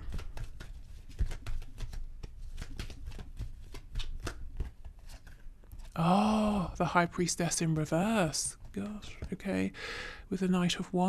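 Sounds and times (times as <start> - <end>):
cards being shuffled: 0.0 - 6.0.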